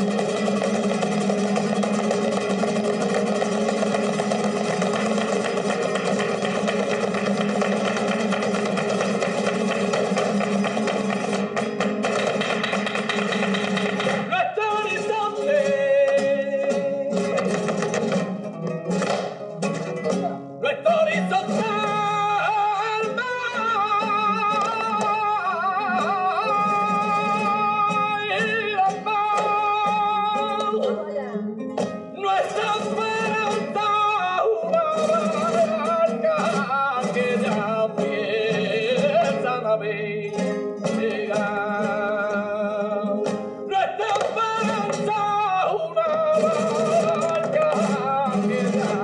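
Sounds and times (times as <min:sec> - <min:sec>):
rapid footwork on stage: 0:00.0 - 0:31.2, 0:31.8 - 0:49.0
man singing flamenco: 0:00.0 - 0:49.0.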